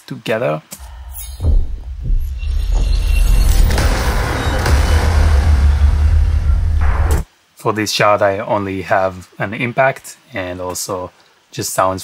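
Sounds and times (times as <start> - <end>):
deep rumble: 1.4 - 7.2.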